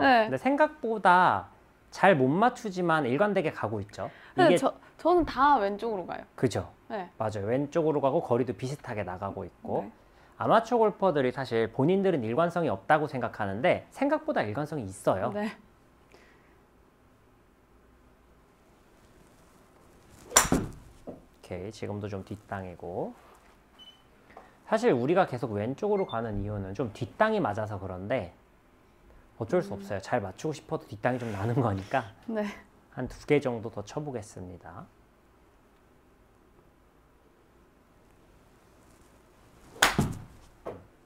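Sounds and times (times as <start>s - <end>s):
golf club swish: 20.0s - 21.1s, 39.5s - 40.6s
ball hitting screen: 20.2s - 20.8s, 39.8s - 40.8s
golf club striking ball: 20.2s - 20.8s, 39.8s - 40.3s
soft thud: 20.3s - 21.2s, 39.8s - 40.8s.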